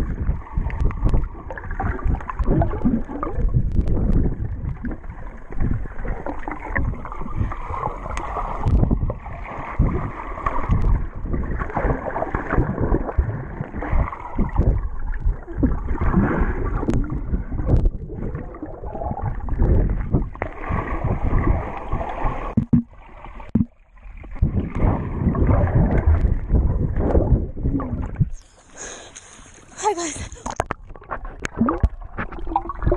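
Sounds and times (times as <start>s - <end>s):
muffled underwater churning: 0.0s - 32.9s
water splashing: 0.0s - 32.9s.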